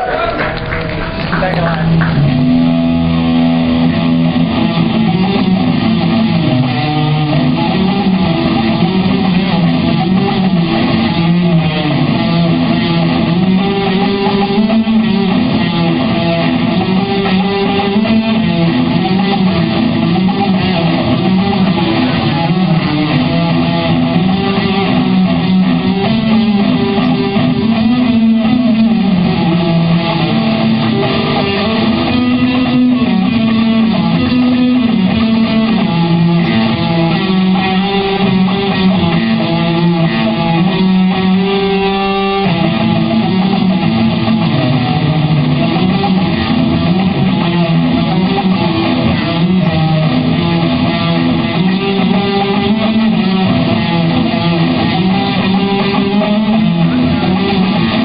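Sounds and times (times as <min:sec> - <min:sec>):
electric guitar melody: 0:00.0 - 0:58.0.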